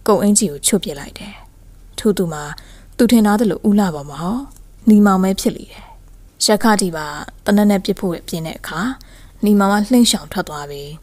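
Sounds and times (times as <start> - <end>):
woman narrating: 0.0 - 11.0.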